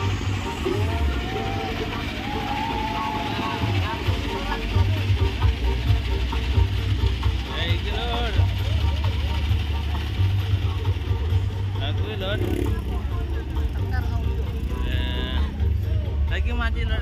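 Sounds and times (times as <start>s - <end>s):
crowd voices: 0.0s - 17.0s
heavy bass music from sound system: 0.0s - 17.0s.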